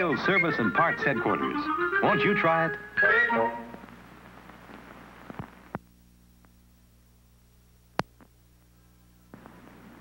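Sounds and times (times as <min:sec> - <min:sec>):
recording hiss and low hum: 0:00.0 - 0:10.0.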